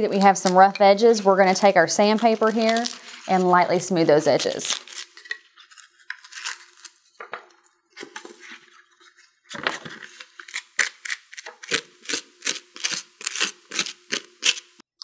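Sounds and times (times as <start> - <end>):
styrofoam squeaking and crackling: 1.4 - 7.2.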